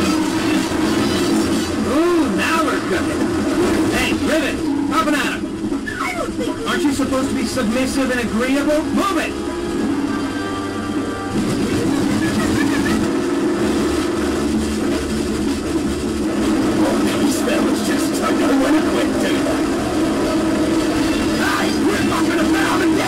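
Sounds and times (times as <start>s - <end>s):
background music: 0.0s - 23.0s
truck engine running: 0.0s - 23.0s.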